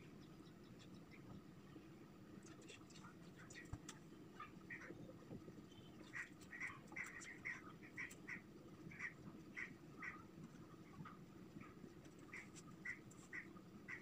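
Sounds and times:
low room hum: 0:00.0 - 0:14.0.

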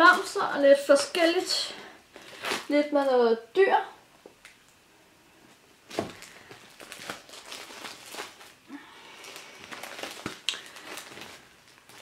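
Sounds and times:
plastic sheet protectors crinkling: 0:00.0 - 0:03.0, 0:05.9 - 0:12.0.

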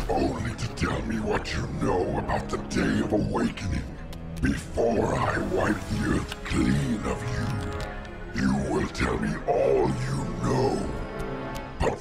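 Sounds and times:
dramatic music score: 0:00.0 - 0:12.0.

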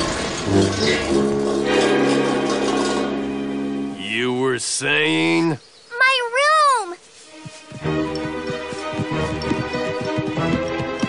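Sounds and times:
background music: 0:00.4 - 0:04.6, 0:07.2 - 0:11.0.

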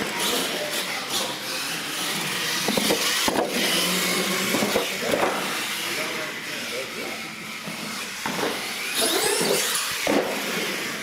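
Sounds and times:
toy truck motor whining: 0:00.0 - 0:11.0.

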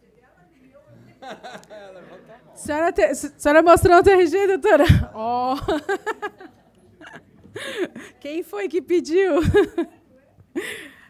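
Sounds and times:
woman laughing: 0:04.7 - 0:08.1, 0:09.3 - 0:09.9.

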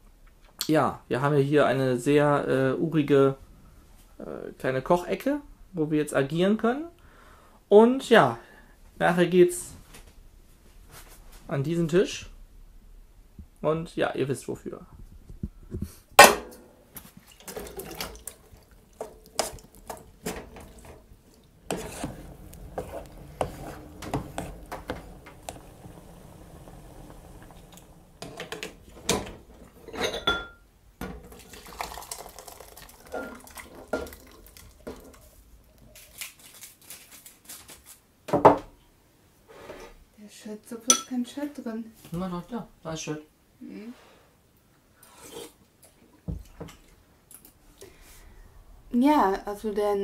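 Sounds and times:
dishes and cutlery clinking: 0:28.2 - 0:31.2, 0:40.9 - 0:41.2.

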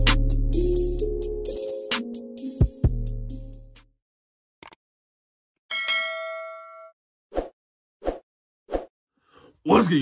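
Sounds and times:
notification bell ding: 0:05.7 - 0:06.9.

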